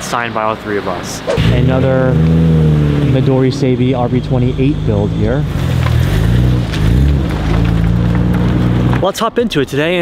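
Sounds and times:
car engine running at low revs: 1.3s - 9.0s.

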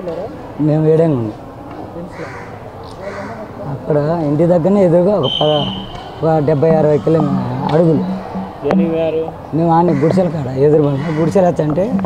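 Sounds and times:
faint background voices: 0.0s - 12.0s
man speaking: 3.6s - 12.0s
short harsh noise: 5.3s - 6.5s.

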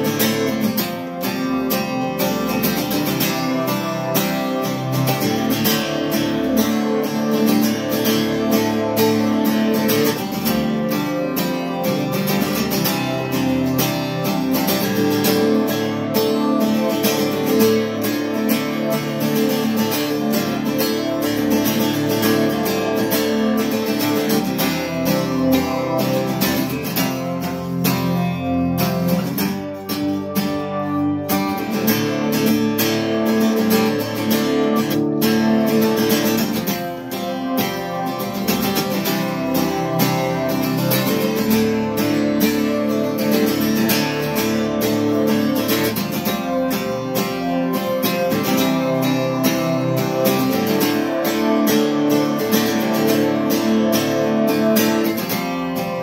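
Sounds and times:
acoustic guitar strumming: 0.0s - 56.0s
guitar synth sustaining chords: 0.0s - 56.0s.

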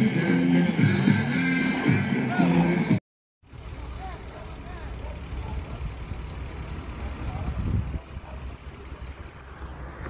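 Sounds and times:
truck engines idling: 2.0s - 10.0s.

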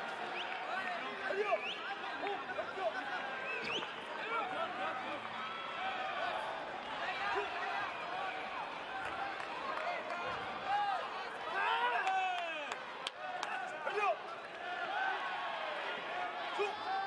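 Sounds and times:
spectators shouting: 10.5s - 17.0s.

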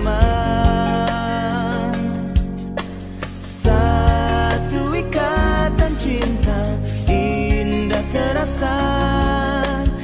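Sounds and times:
instrumental backing with steady beat: 0.0s - 10.0s.

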